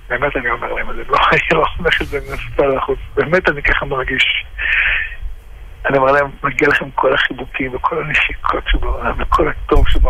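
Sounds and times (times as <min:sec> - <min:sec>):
person talking: 0:01.1 - 0:04.6.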